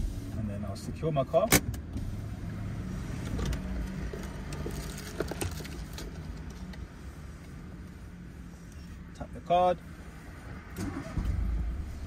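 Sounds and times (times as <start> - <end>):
light clicks and rustles: 3.2 - 7.6.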